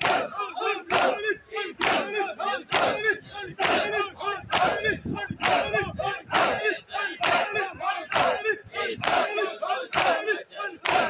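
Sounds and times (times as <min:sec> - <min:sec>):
crowd chanting lament: 0:00.0 - 0:11.0
people slapping chests: 0:01.8 - 0:04.8, 0:09.0 - 0:11.0.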